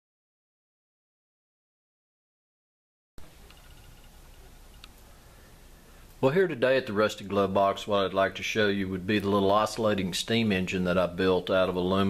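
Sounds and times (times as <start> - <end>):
hiss with low hum: 3.2 - 12.0
faint ticks: 3.4 - 5.1.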